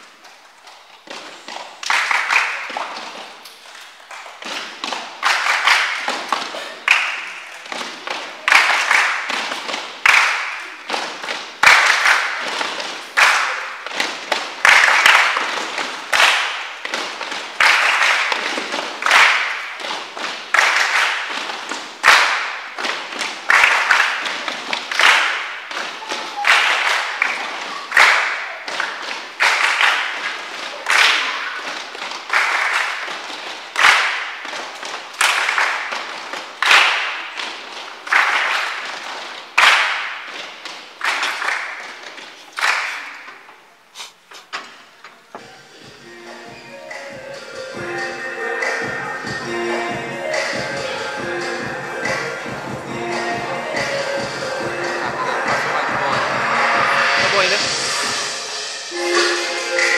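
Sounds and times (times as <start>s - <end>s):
children clapping in echoing hall: 0.0s - 44.0s, 46.9s - 59.9s.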